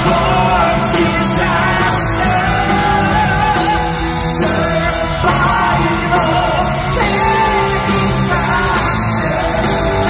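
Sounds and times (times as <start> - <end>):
distorted guitars: 0.0 - 10.0
drums: 0.0 - 10.0
keyboards: 0.0 - 10.0
metal band playing live: 0.0 - 10.0
person singing: 0.0 - 10.0.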